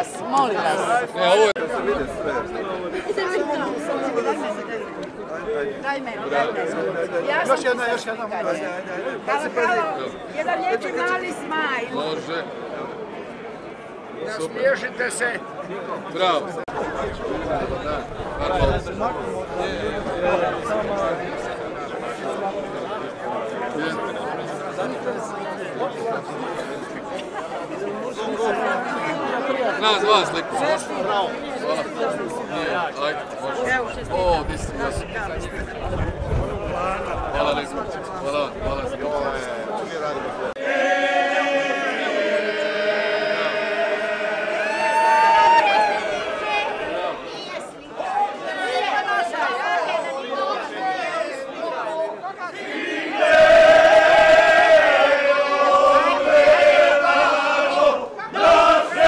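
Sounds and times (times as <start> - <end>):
crowd chatter: 0.0 - 59.0.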